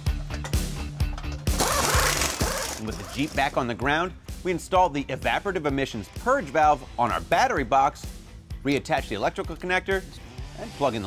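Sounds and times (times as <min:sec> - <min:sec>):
background music with steady beat: 0:00.0 - 0:11.0
power tool rattling: 0:01.1 - 0:03.5.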